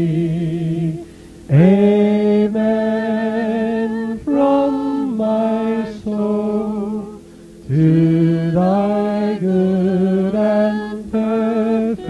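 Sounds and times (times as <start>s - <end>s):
slow singing in held notes: 0.0s - 12.0s.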